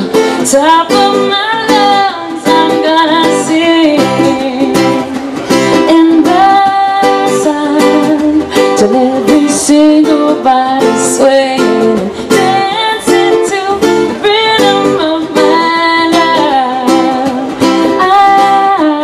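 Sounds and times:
acoustic guitar strumming: 0.0s - 19.0s
person singing: 0.0s - 19.0s
ukulele strumming: 0.0s - 19.0s.

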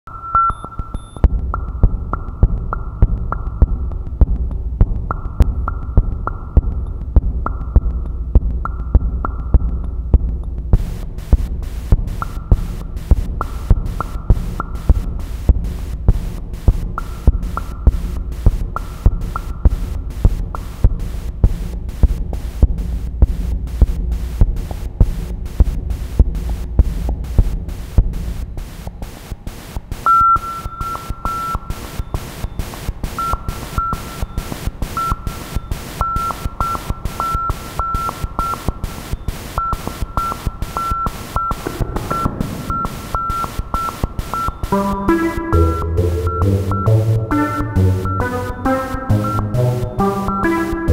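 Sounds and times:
electronic clicks: 0.1s - 1.7s, 30.0s - 50.9s
low electronic thumps: 1.2s - 29.0s, 41.5s - 46.8s
bright repeated tone: 41.6s - 50.9s.

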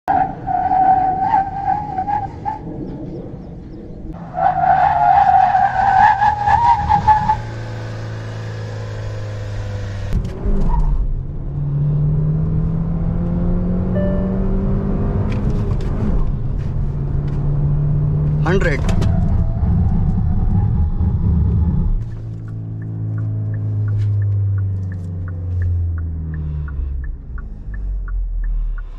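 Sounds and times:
road and tyre rumble: 0.0s - 28.9s
regular ticking: 22.0s - 28.9s.

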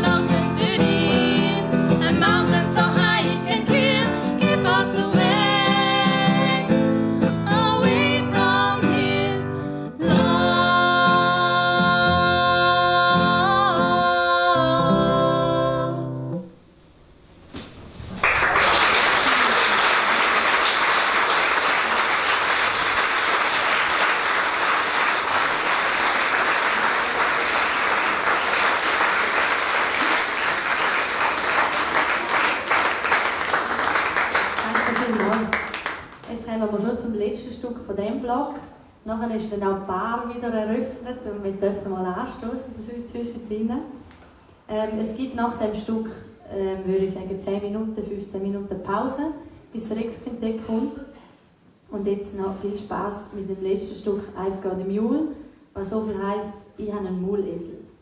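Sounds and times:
classical guitar: 0.0s - 16.5s
audience applauding: 18.1s - 36.3s.

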